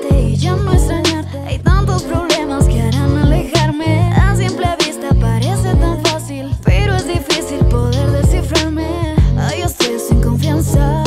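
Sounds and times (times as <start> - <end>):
r and b pop backing track: 0.0 - 11.0
woman singing: 0.0 - 11.0.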